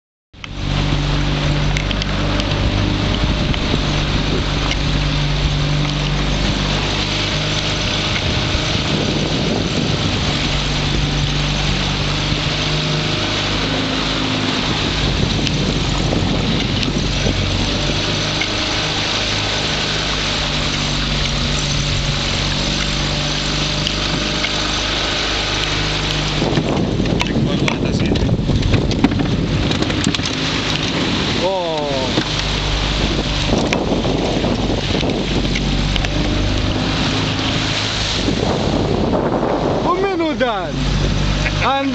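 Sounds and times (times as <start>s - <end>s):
motorboat engine running: 0.4s - 41.9s
water rushing along hull: 0.4s - 41.9s
wind on microphone: 0.4s - 41.9s
irregular clicks and knocks: 1.6s - 3.7s, 25.6s - 31.0s.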